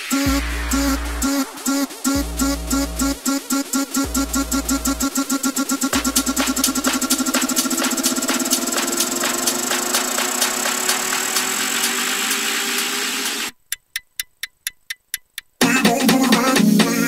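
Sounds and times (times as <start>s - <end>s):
rising synth tone: 0.0s - 13.5s
electronic dance music: 0.0s - 13.6s, 15.6s - 17.0s.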